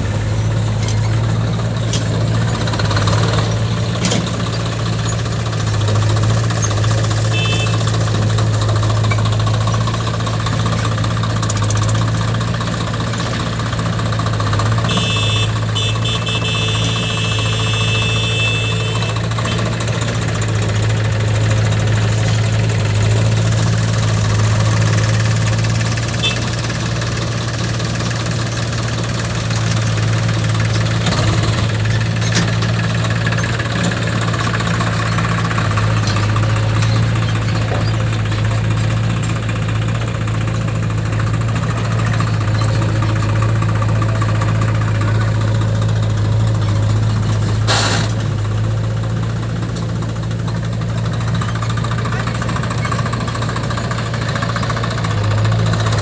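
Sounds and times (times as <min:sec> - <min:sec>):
diesel tractor engine running: 0:00.0 - 0:56.0.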